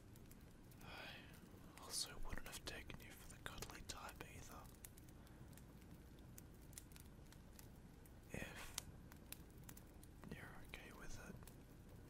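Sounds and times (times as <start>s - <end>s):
faint rain: 0.0s - 12.0s
fire crackling: 0.0s - 12.0s
soft breathy voice: 0.8s - 5.6s, 8.3s - 8.8s, 10.2s - 11.5s.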